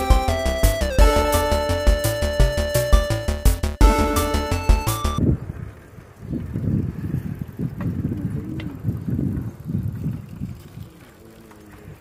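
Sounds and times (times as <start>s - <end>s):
bicycle riding on concrete road: 5.2s - 12.0s
wind buffeting microphone: 5.2s - 12.0s.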